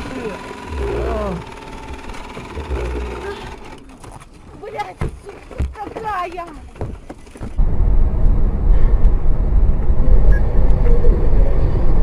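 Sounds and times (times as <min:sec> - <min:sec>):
indistinct voices: 0:00.0 - 0:04.0.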